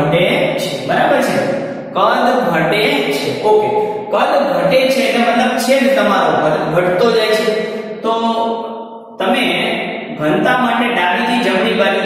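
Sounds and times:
man speaking drawn-out syllables: 0.0s - 8.5s, 9.2s - 12.0s.

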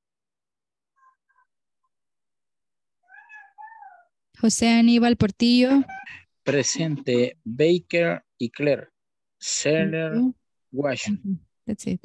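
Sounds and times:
cat meowing: 3.0s - 4.1s.

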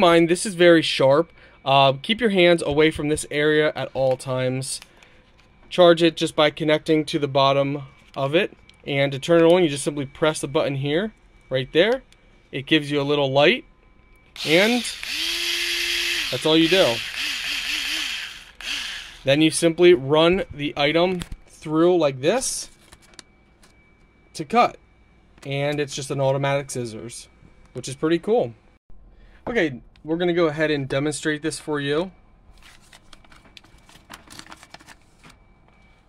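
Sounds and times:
small electric motor whirring: 14.4s - 19.3s
paper rustling and crinkling: 22.7s - 23.8s, 32.5s - 35.5s.

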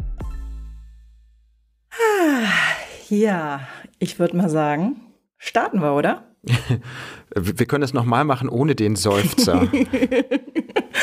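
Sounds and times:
person sighing: 1.9s - 3.1s.

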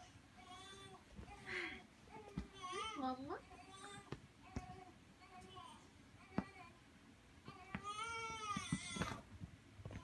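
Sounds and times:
small knocks: 7.5s - 10.0s.

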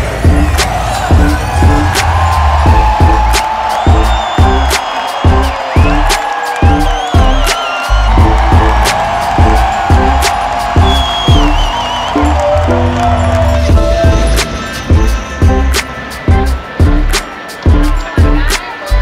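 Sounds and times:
loud music with heavy beat: 0.0s - 19.0s.

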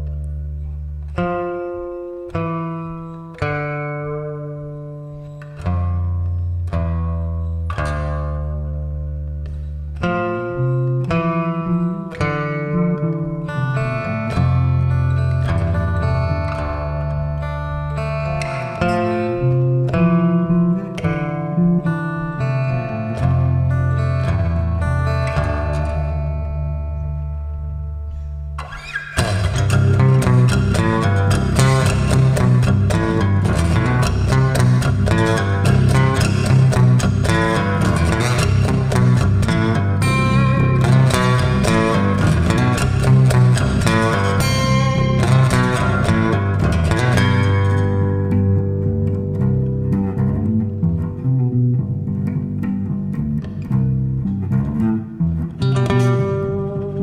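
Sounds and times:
acoustic guitar playing: 0.0s - 57.0s
electric bass guitar playing: 0.0s - 57.0s.

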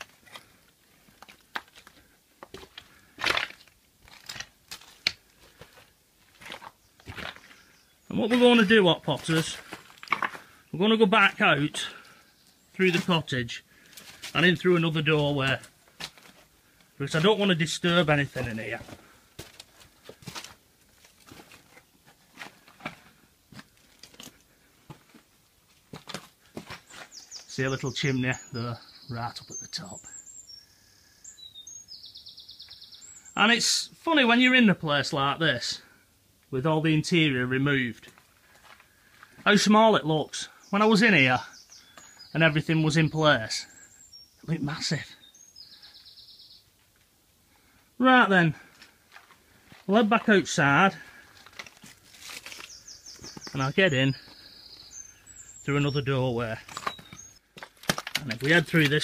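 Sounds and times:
footsteps crunching on rubble: 0.0s - 12.2s, 12.8s - 27.8s, 38.0s - 39.5s, 48.6s - 55.4s, 56.4s - 59.0s
small bird singing: 6.4s - 9.7s, 10.4s - 15.6s, 26.5s - 34.0s, 38.9s - 46.8s, 52.2s - 57.5s.

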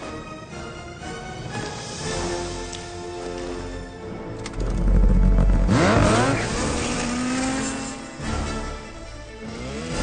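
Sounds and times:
snowmobile engine revving: 4.6s - 8.6s.

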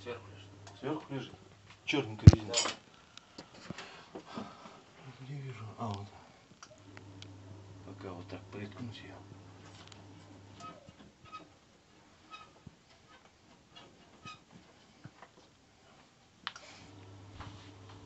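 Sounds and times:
low electrical hum: 0.0s - 3.6s, 4.5s - 12.8s, 16.6s - 18.0s.

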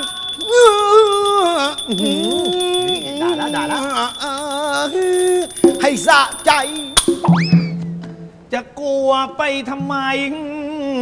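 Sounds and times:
small cymbals ringing: 0.0s - 8.5s.

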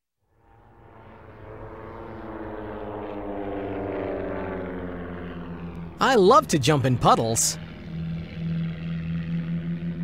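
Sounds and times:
propeller airplane flying by: 0.3s - 10.0s.

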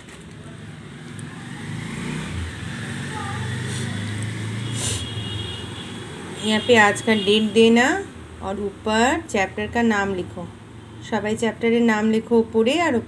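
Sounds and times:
vehicle engine approaching: 0.2s - 5.0s.

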